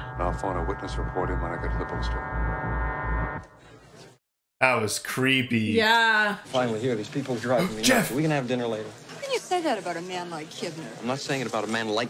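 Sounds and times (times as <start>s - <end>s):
blaring horn-like drone: 0.0s - 3.5s
low pulsing beat: 0.0s - 3.6s.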